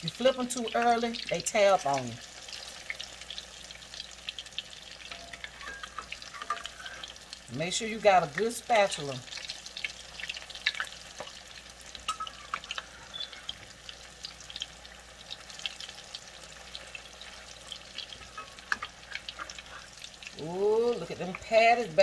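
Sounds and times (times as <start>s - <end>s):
food sizzling in oil: 0.0s - 22.0s.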